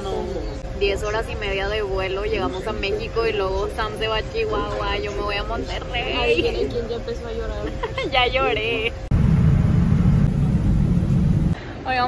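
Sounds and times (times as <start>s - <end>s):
airliner cabin engine rumble: 0.0s - 11.6s.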